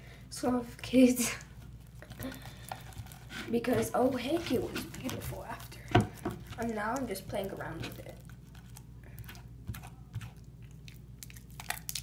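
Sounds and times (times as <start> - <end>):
slime squelching: 0.9 - 12.0.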